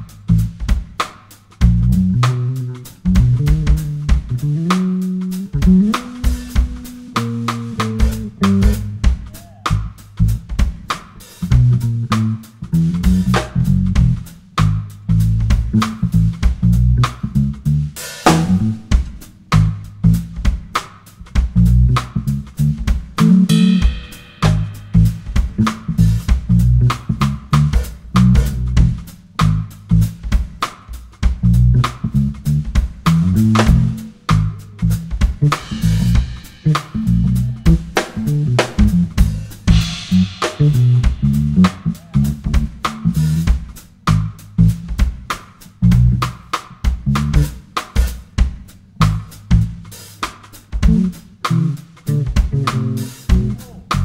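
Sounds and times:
bass guitar line: 0.0s - 54.0s
drum kit: 0.0s - 54.0s
guitar: 5.0s - 9.9s, 23.2s - 27.2s.

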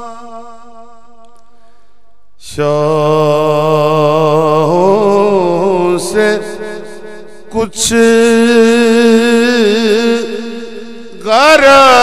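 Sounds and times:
man singing into a microphone: 0.0s - 1.3s, 2.4s - 12.0s.

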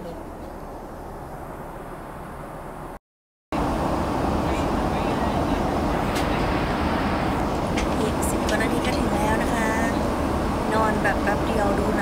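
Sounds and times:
jet engines droning: 0.0s - 3.0s, 3.6s - 12.0s
rushing air: 3.6s - 11.6s.

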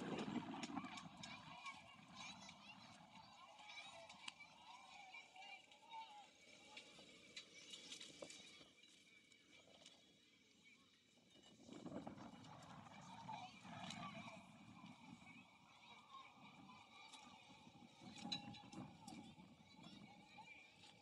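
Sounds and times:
faint distant voices: 0.0s - 21.0s.

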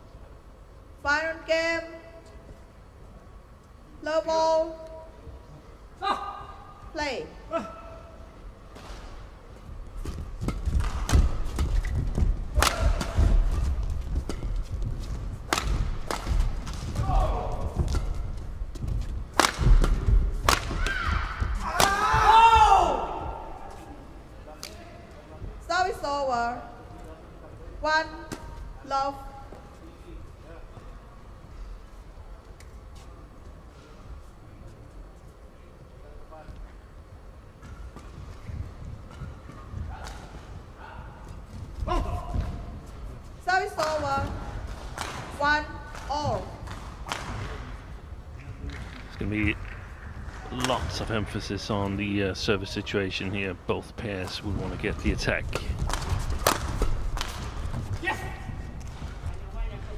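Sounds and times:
footsteps thudding on court: 10.0s - 23.5s
rackets striking shuttlecock: 10.1s - 14.6s, 15.4s - 22.2s, 55.5s - 57.8s
person shouting: 20.8s - 23.5s.

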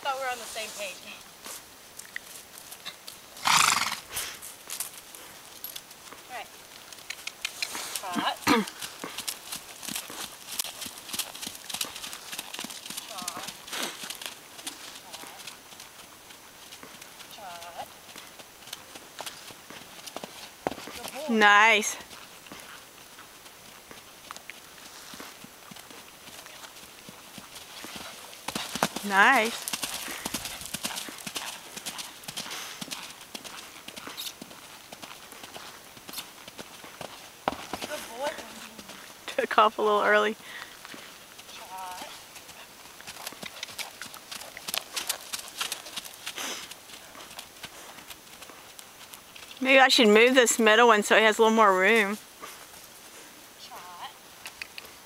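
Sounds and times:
pony hoofbeats on grass: 0.0s - 55.0s.

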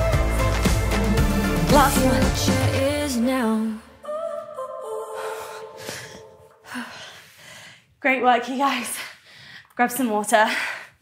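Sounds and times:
pop music: 0.0s - 5.8s
woman breathing heavily: 5.1s - 8.0s, 8.6s - 9.8s, 10.4s - 11.0s.

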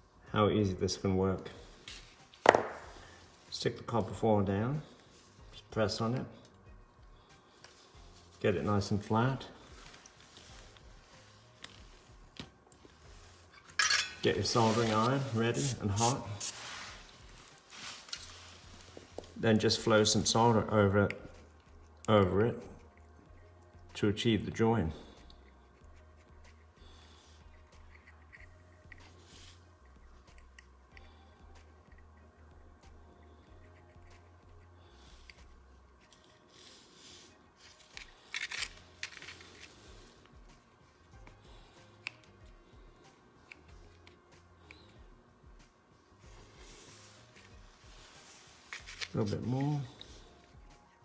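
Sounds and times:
low steady hum: 0.0s - 51.0s
soft scratchy handling sounds: 7.4s - 22.0s, 33.6s - 45.0s, 45.6s - 51.0s
soft rustle: 14.2s - 19.5s.

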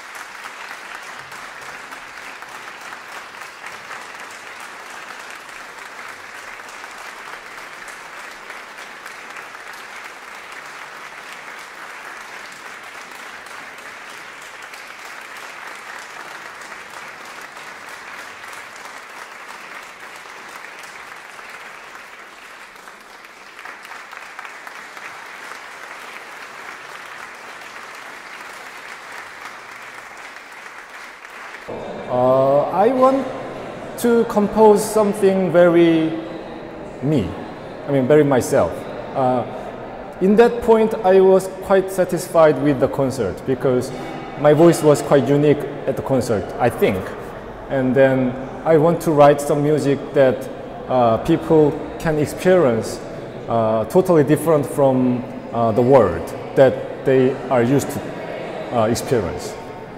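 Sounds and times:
audience applauding: 0.0s - 36.1s, 55.8s - 59.9s.

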